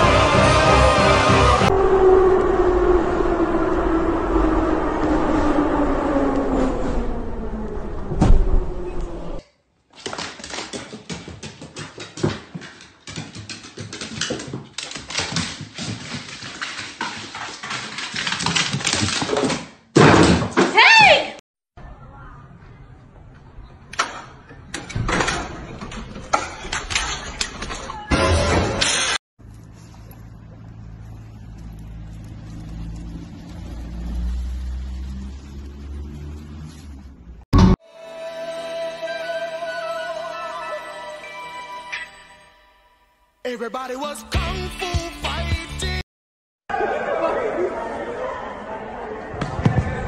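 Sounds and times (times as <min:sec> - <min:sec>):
dog claws clicking on wooden stairs: 0:10.0 - 0:19.7
low engine-like hum: 0:29.4 - 0:37.4.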